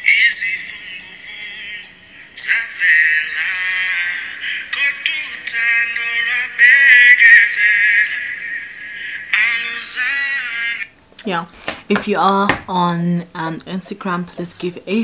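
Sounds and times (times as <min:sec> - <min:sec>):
song through phone speaker: 0:00.0 - 0:12.9.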